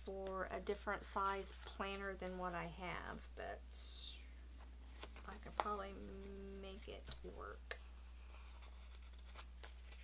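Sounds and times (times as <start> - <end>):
paper sticker sheets rustling: 4.9 - 10.0.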